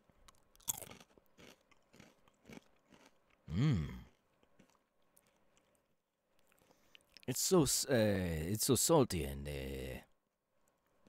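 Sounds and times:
potato chips crunching: 0.2 - 3.4.

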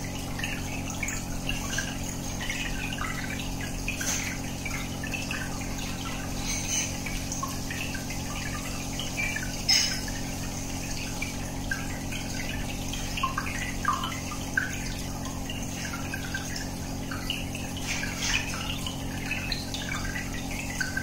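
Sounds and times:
air bubbles plopping and gurgling: 0.0 - 21.0.

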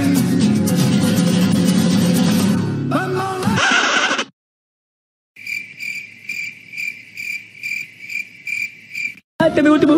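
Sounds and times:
cricket chirps: 5.4 - 9.3.

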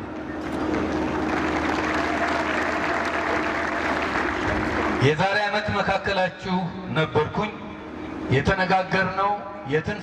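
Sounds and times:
faint steady hum: 0.0 - 10.0
crowd applauding: 0.4 - 5.0.

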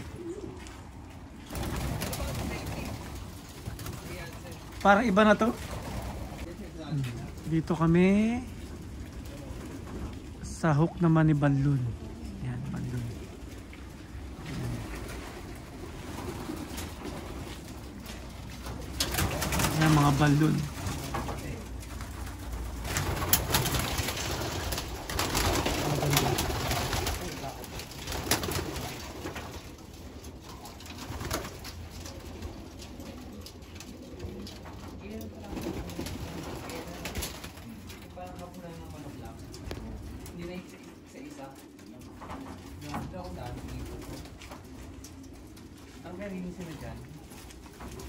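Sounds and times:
pigeons cooing: 0.0 - 48.0.

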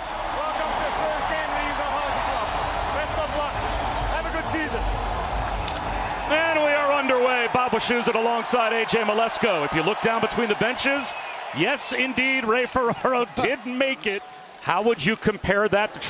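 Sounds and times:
crowd cheering and chattering: 0.0 - 16.0
commentator speaking: 6.3 - 16.0.

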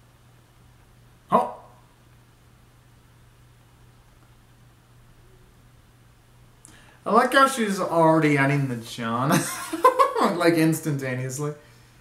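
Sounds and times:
man exclaiming: 1.3 - 1.7.

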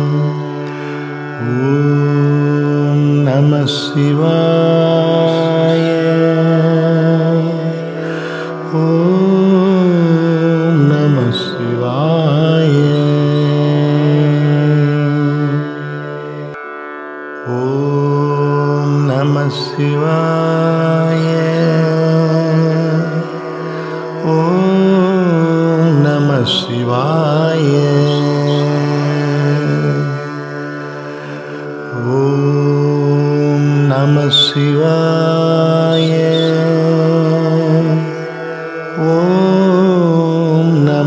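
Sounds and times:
devotional chant-like music: 0.0 - 41.0.

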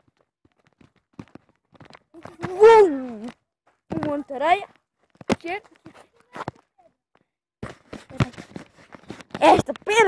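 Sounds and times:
soft footsteps: 0.0 - 10.0.

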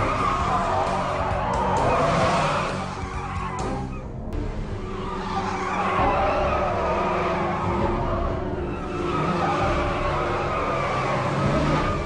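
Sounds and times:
car tyres squealing in a skid: 0.0 - 4.0, 4.8 - 12.0
car engine running: 0.0 - 12.0.

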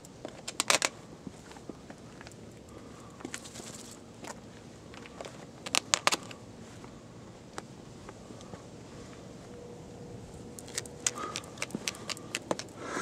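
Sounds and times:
shoes stepping on road: 10.6 - 12.8.

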